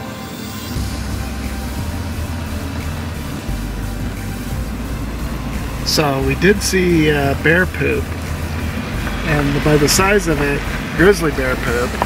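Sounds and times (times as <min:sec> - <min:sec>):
background music: 0:00.0 - 0:12.0
low steady rumble: 0:00.8 - 0:12.0.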